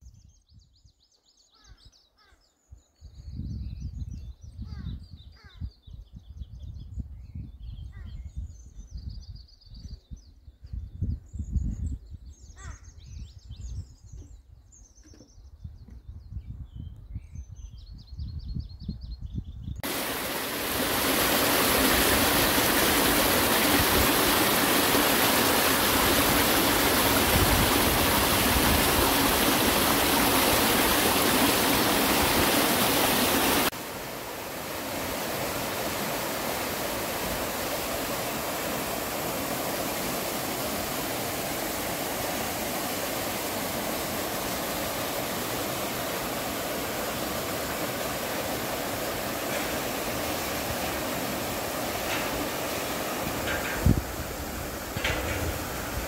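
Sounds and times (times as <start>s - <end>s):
stream water flowing: 19.8s - 56.0s
water rushing over rocks: 19.8s - 56.0s.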